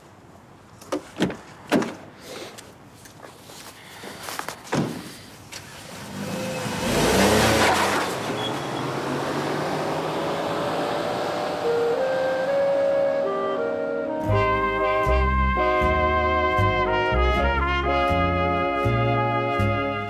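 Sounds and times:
car engine pulling away: 5.6s - 13.9s.

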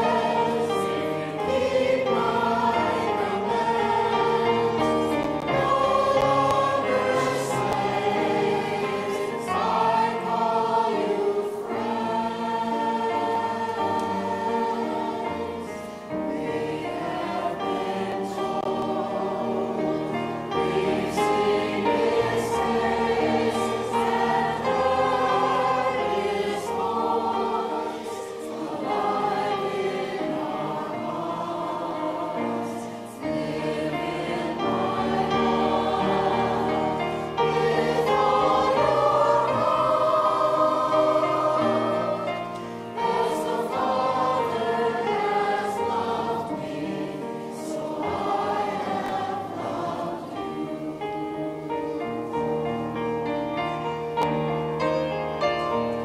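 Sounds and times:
church choir singing a hymn: 0.0s - 56.0s.

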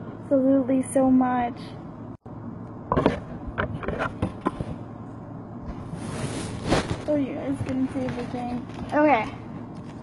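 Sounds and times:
cardboard rustling: 6.0s - 8.6s.

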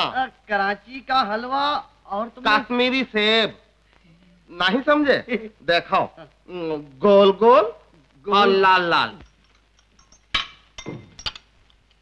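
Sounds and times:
cups and saucers clinking: 9.2s - 11.6s.

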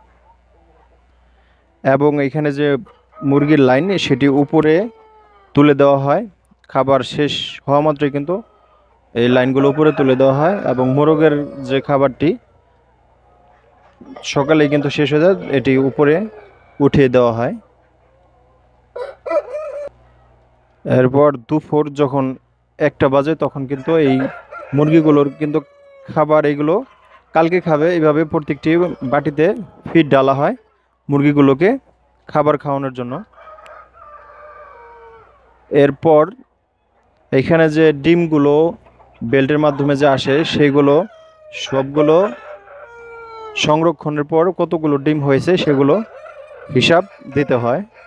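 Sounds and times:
chickens calling: 0.0s - 48.0s
man speaking: 1.8s - 4.9s, 5.6s - 8.4s, 9.2s - 12.4s, 14.0s - 17.7s, 20.9s - 33.3s, 35.7s - 36.4s, 37.3s - 42.4s, 43.6s - 46.1s, 46.7s - 47.9s
rooster crowing: 2.9s - 5.8s, 8.1s - 12.7s, 13.5s - 17.5s, 18.3s - 20.3s, 23.5s - 30.8s, 33.3s - 35.6s, 39.5s - 43.9s, 45.2s - 48.0s.

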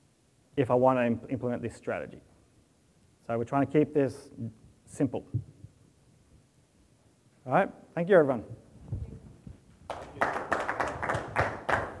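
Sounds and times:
audience applauding: 9.9s - 12.0s.

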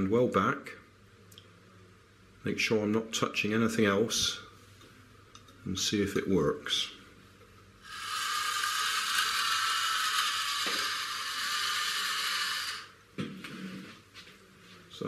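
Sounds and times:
toy motor and gears whirring: 7.8s - 13.0s.

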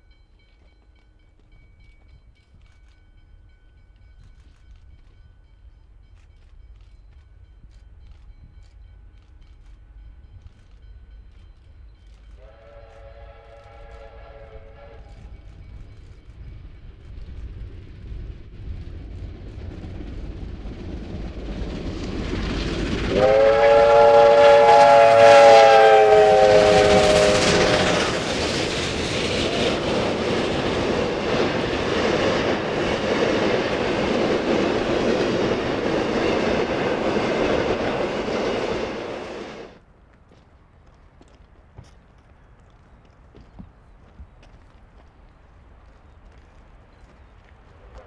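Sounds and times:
carriages rolling on rails: 0.0s - 48.0s
steam locomotives passing: 0.0s - 48.0s
steam whistle chord: 12.4s - 15.3s, 23.1s - 28.2s.

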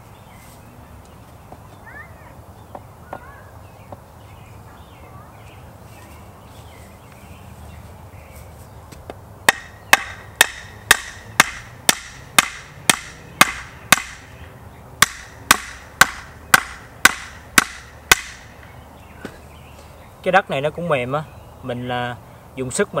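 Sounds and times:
hammer pounding wooden post: 9.5s - 14.3s, 15.0s - 18.6s.

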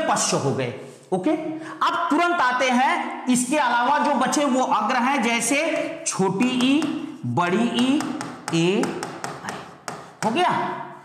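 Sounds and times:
rapid taps on hard surface: 5.7s - 7.1s, 7.8s - 10.5s.

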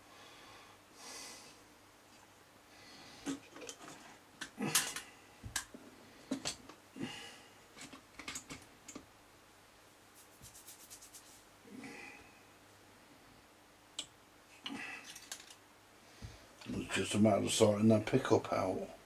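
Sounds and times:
small parts clicking and tapping: 3.2s - 6.8s, 7.8s - 9.1s, 14.0s - 15.6s.

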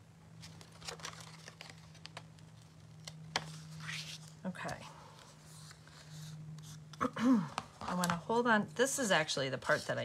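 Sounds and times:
paper crinkling: 0.4s - 6.9s.

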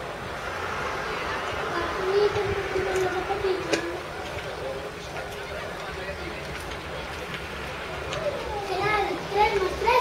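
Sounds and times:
children shouting: 8.0s - 10.0s.

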